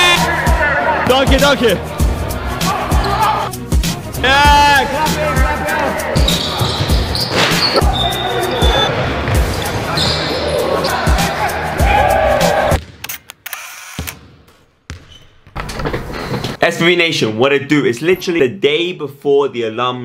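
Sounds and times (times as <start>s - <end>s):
music with regular beat: 0.0s - 10.0s, 10.7s - 12.8s
people shouting: 1.8s - 3.6s, 4.3s - 12.8s
basketball bouncing on court: 6.2s - 8.0s, 12.8s - 13.0s, 14.0s - 16.1s.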